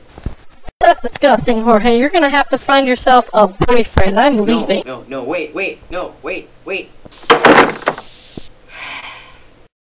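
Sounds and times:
person exhaling: 8.0 - 9.5.

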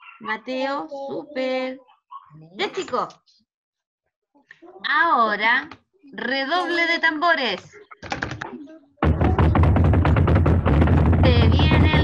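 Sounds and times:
drum roll: 9.0 - 12.0
deep low rumble: 9.1 - 12.0.

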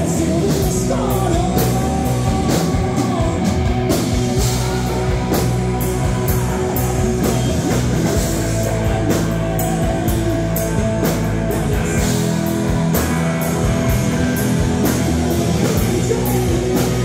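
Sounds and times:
drum kit beat: 0.0 - 17.0
electric guitars: 0.0 - 17.0.

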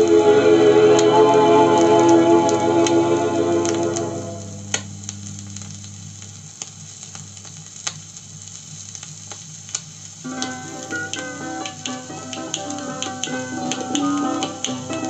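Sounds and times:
held chord from record: 0.0 - 7.4, 10.2 - 15.0
song from record player: 0.0 - 7.4, 9.8 - 15.0
low steady hum: 0.0 - 9.3
vinyl surface crackle and clicks: 0.9 - 15.0.

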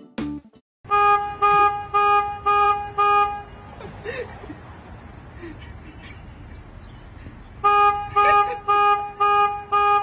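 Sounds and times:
car horn honks: 0.9 - 3.6, 7.6 - 10.0.

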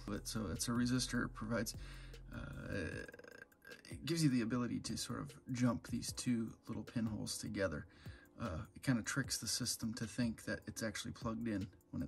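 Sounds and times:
man saying uh: 1.7 - 4.7.

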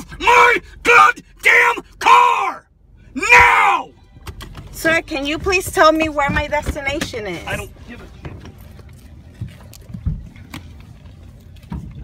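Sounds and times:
low rumble inside car: 0.0 - 12.0.

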